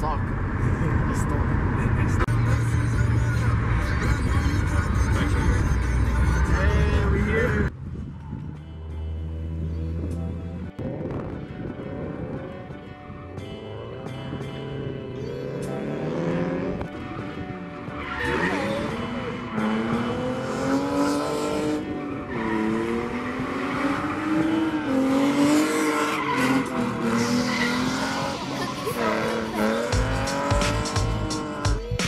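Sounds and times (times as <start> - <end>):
car engine revving: 0.0 - 31.9
tyres squealing: 22.1 - 31.4
low music beat: 26.5 - 32.0.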